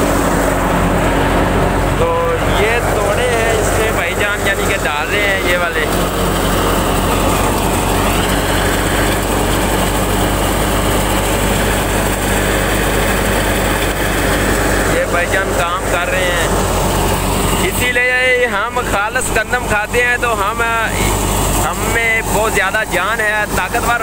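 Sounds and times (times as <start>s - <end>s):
thresher machine running: 0.0s - 24.0s.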